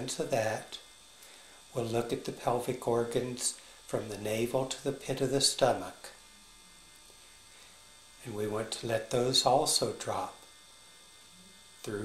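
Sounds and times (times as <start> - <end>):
faint electrical hum: 0.0 - 12.0.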